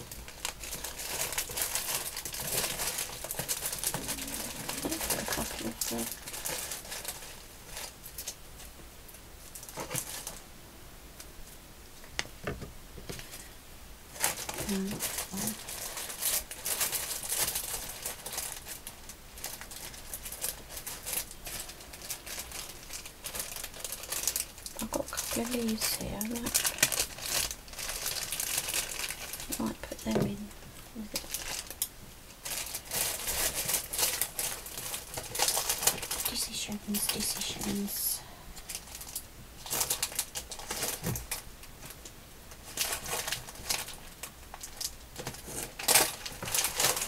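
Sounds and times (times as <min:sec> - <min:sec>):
plastic bags crinkling: 0:00.0 - 0:08.7, 0:09.4 - 0:10.4, 0:14.1 - 0:47.0
low murmuring voice: 0:03.8 - 0:06.2.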